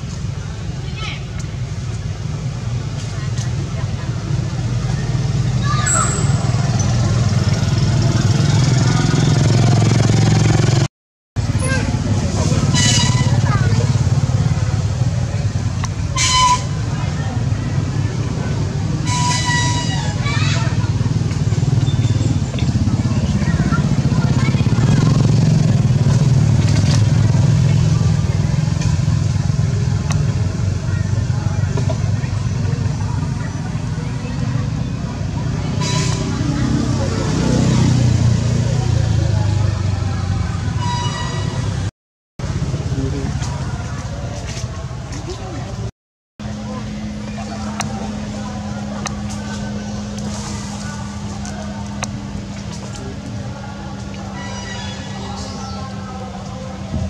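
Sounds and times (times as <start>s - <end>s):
low motor rumble: 0.0s - 57.0s.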